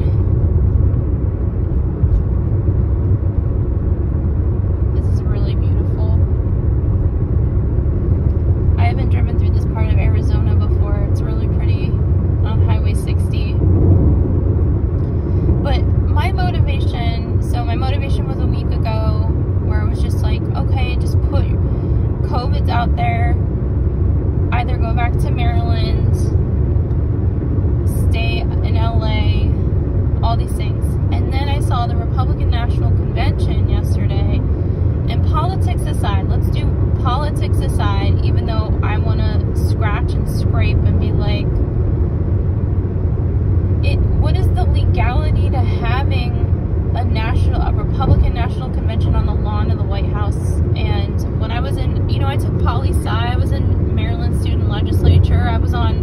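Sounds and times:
car road and engine rumble: 0.0 - 56.0
person talking: 47.0 - 56.0.

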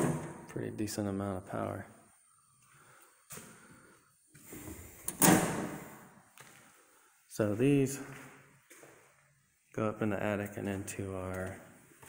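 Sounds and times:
metal door clacking shut: 5.1 - 5.8.

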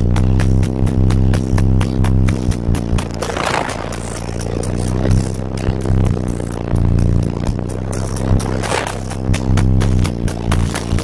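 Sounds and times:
electronic music with deep bass: 0.0 - 11.0
noisy rush: 0.0 - 11.0.

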